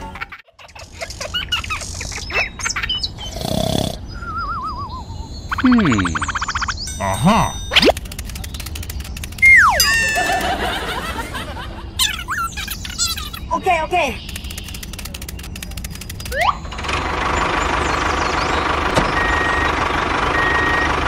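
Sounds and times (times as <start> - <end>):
wavering wobble tone: 5.5 - 7.9, 9.4 - 10.8
falling and rising whistle glides: 9.4 - 10.6.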